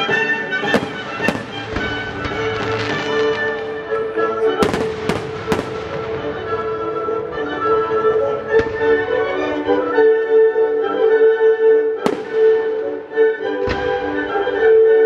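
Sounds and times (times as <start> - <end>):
orchestra playing sustained chords: 0.0 - 15.0.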